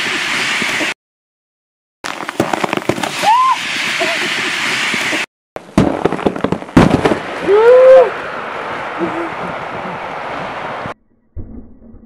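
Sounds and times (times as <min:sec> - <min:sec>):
sharp cracks and pops: 0:02.0 - 0:03.3.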